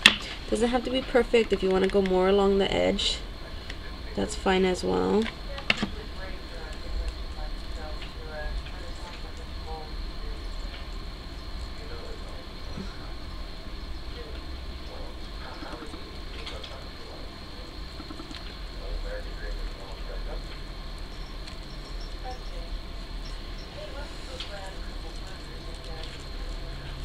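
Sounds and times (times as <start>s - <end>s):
faint high-pitched whine: 0.0s - 27.0s
faint murmured voices: 0.0s - 27.0s
low room rumble: 0.0s - 27.0s.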